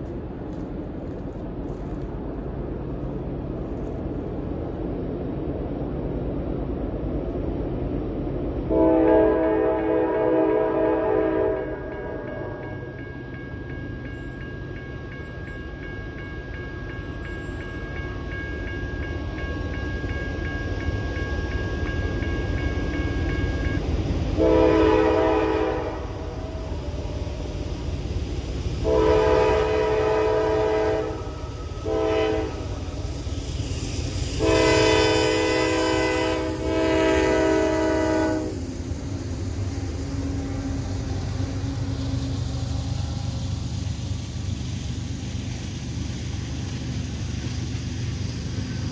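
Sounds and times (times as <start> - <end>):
low rumble of train: 0.0 - 48.9
locomotive air horn blasts: 8.7 - 12.8, 24.4 - 26.6, 28.8 - 32.9, 34.4 - 38.6.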